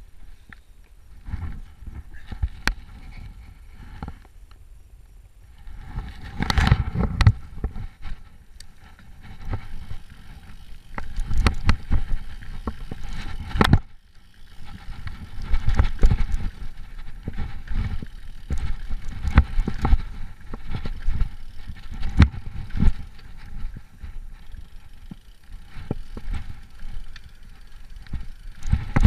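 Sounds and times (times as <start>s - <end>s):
bike tyres rumbling on dirt: 0.0s - 29.0s
bike knocks and rattles: 1.2s - 4.3s, 5.6s - 29.0s.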